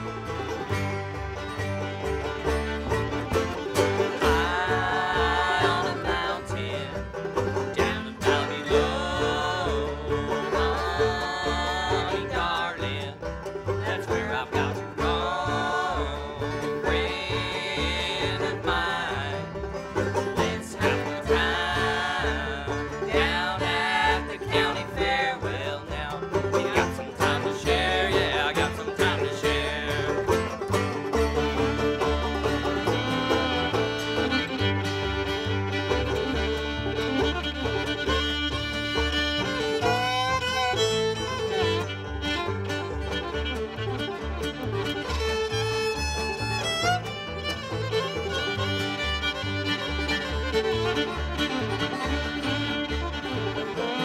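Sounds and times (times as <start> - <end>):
bluegrass string band playing: 0.0 - 54.0
fiddle lead with sliding notes: 0.0 - 54.0.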